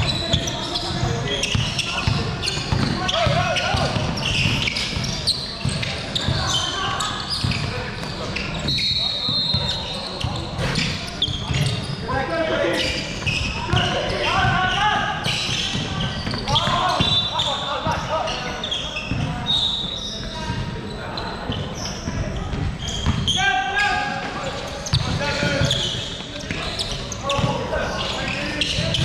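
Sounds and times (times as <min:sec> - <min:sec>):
players calling out: 0:00.0 - 0:29.0.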